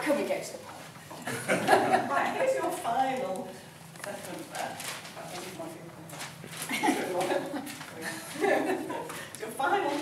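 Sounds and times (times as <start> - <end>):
group murmuring and chuckling: 1.1 - 2.8, 6.6 - 9.4
paper rustling: 4.0 - 8.6.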